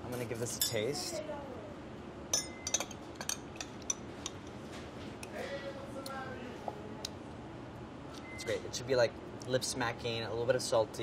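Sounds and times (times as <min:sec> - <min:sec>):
spoon clinking against glass: 0:02.3 - 0:04.4.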